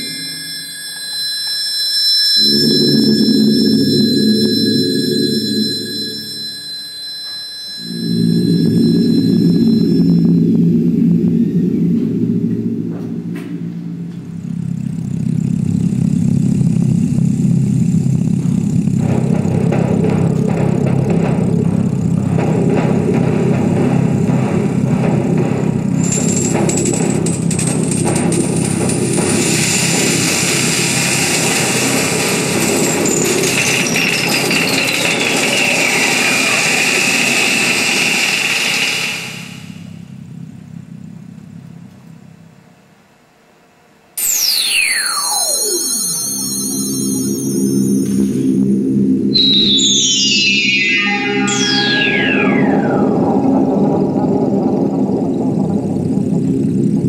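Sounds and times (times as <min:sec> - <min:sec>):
fast downward sweep: 0:02.4 - 0:07.0, 0:44.2 - 0:57.0
electroacoustic computer music: 0:44.2 - 0:56.3.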